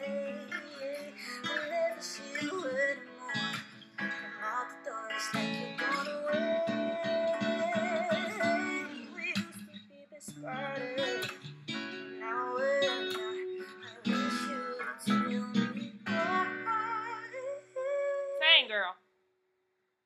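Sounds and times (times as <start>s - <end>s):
woman singing: 0.0s - 3.6s, 4.2s - 11.3s, 12.2s - 18.9s
acoustic guitar chords: 0.0s - 18.9s.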